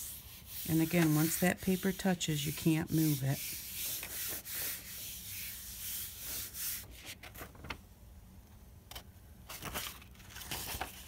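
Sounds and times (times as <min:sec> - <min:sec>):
hand rubbing paper: 0:00.0 - 0:07.2.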